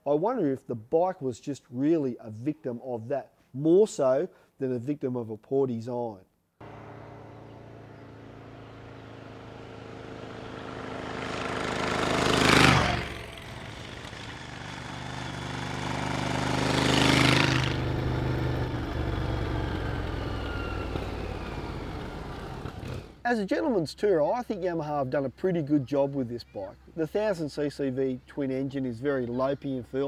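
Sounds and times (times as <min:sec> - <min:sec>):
motorcycle engine passing by: 0:06.6 - 0:23.2.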